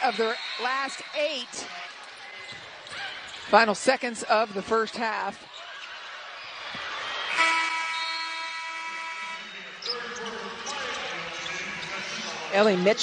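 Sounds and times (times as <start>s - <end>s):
game clock horn: 7.4s - 9.4s.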